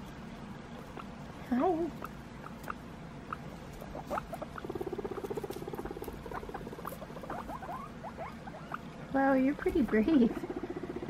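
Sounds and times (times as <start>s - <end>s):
guinea pigs squeaking: 0.0s - 11.0s.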